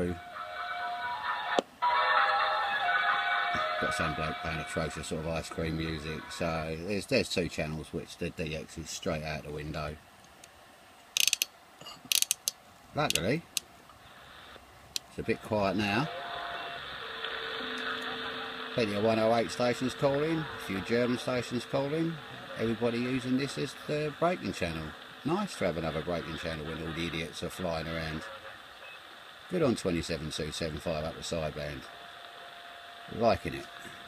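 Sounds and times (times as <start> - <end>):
radio static hiss: 0.0 - 34.0
radio whistling tones: 3.0 - 6.8, 15.2 - 34.0
radio click: 13.0 - 15.1, 16.6 - 27.1.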